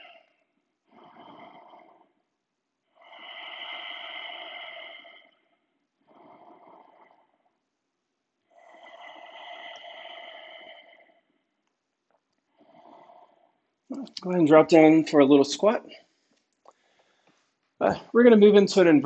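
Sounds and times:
person breathing deeply: 0.0 - 2.2, 2.9 - 7.5, 8.5 - 11.3, 16.0 - 17.5.

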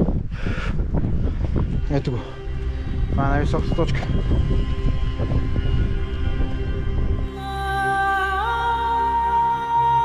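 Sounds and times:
wind buffeting microphone: 0.0 - 7.3.

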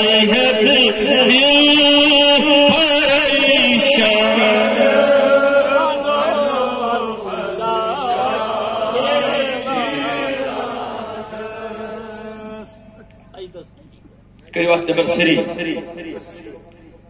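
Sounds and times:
man chanting devotional song: 0.0 - 8.4.

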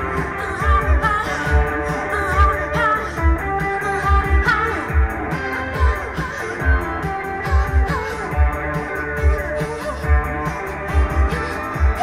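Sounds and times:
electric guitar: 0.0 - 12.0
person singing: 0.0 - 12.0.

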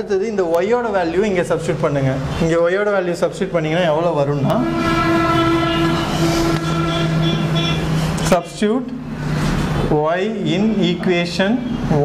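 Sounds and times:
steady pitched tone: 4.4 - 8.3.

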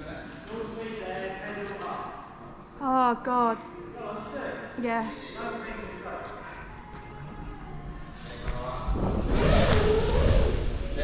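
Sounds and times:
bike tyre noise: 8.2 - 11.0
wind rush on microphone: 8.4 - 11.0.

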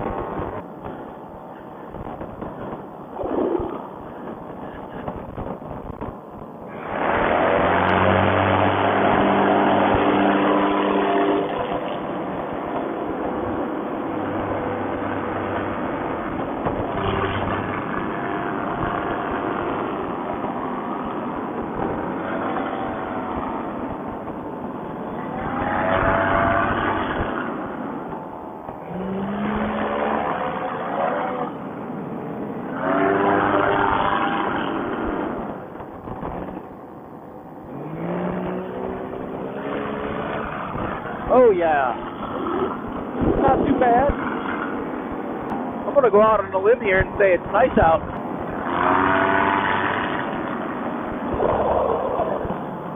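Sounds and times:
paramotor engine and propeller: 0.0 - 52.9.

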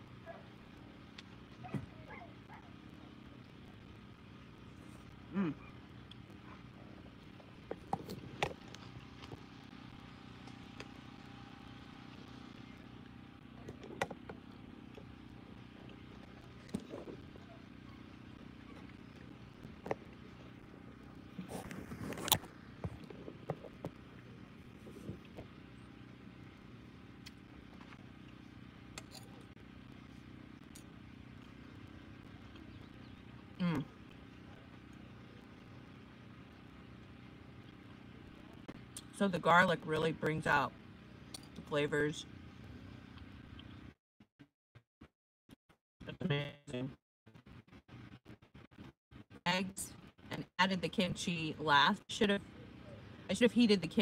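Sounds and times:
steady low hum: 0.0 - 44.0, 46.0 - 54.0
short hummed voice: 4.9 - 7.0, 33.5 - 34.6.

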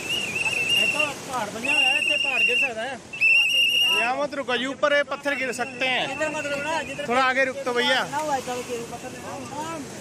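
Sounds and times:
high-pitched whistle tone: 0.0 - 4.2.

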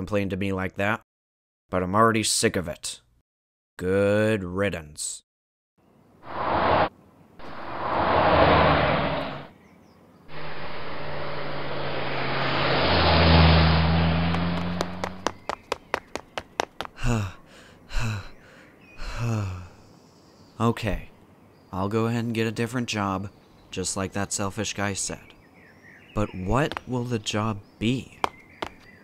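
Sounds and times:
rushes of noise: 6.2 - 9.5, 10.3 - 15.4
car engine humming: 6.3 - 9.5, 10.3 - 16.8.

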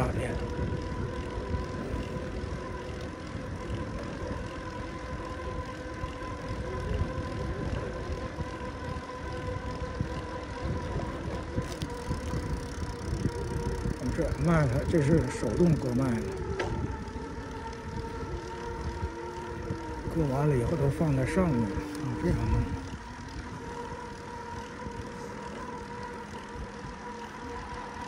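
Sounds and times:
bicycle tyre and wind rumble: 0.0 - 28.0
faint steady whine: 0.0 - 28.0.

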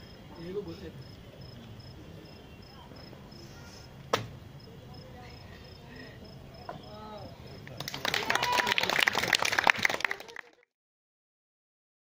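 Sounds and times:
sharp knock: 4.1 - 4.4.

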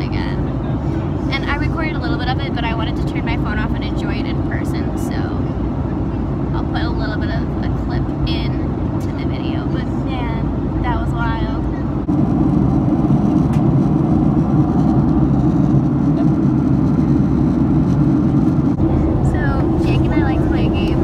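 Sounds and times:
jet airliner cabin drone: 0.0 - 21.0.

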